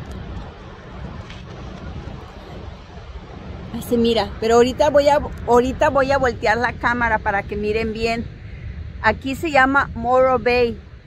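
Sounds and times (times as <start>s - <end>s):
ocean surf breaking: 0.0s - 11.0s
wind buffeting microphone: 0.0s - 11.0s.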